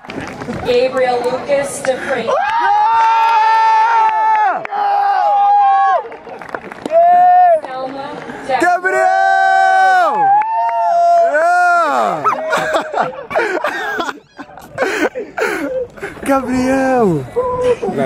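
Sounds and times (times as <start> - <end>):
young men shouting cheers: 2.3 - 6.1, 6.9 - 7.6, 8.6 - 13.2.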